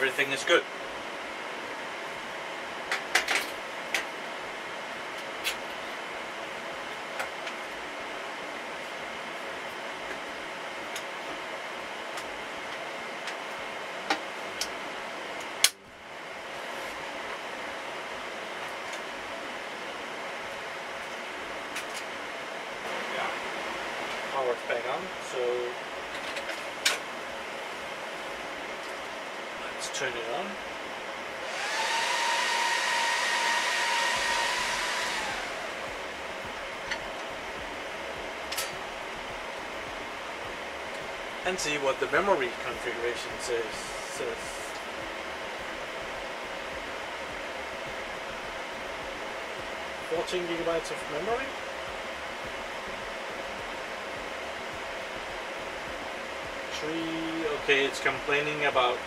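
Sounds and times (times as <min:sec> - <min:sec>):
loud fan whine: 0:00.0 - 0:59.0
server fans whirring: 0:00.0 - 0:59.0.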